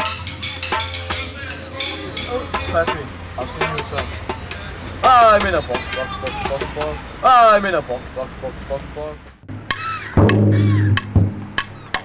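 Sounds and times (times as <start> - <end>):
deep drum strokes: 9.5 - 12.0.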